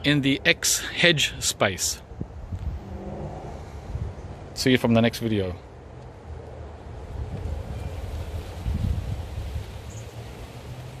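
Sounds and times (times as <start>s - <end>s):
wind buffeting microphone: 2.0s - 4.5s, 6.8s - 10.2s.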